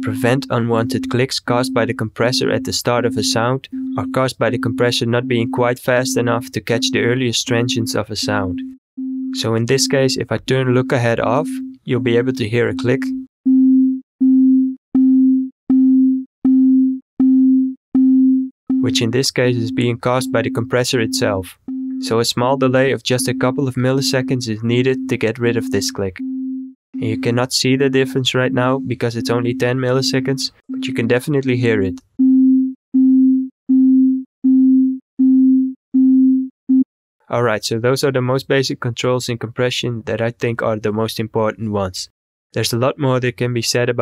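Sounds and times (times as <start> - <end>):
low sine test tone notes: 0.0 - 36.8.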